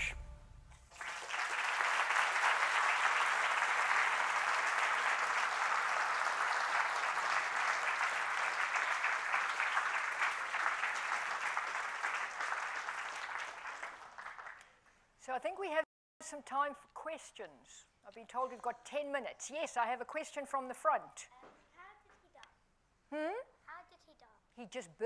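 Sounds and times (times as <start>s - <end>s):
audience applauding: 0.8s - 14.8s.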